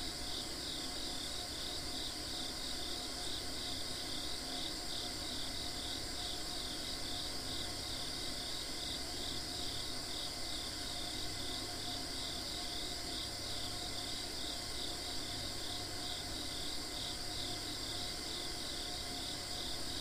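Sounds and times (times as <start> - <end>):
insect chirps: 0.0 - 20.0.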